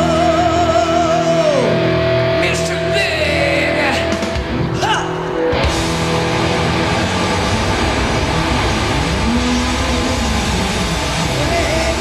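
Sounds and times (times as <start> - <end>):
distorted electric guitar: 0.0 - 12.0
drums: 0.0 - 12.0
electric bass: 0.0 - 12.0
rising and falling pitch: 3.6 - 12.0.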